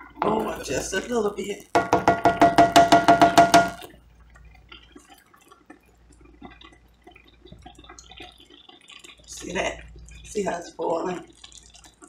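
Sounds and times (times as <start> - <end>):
gravy bubbling and popping: 0.0 - 12.0
spoon knocking on skillet: 1.7 - 4.0.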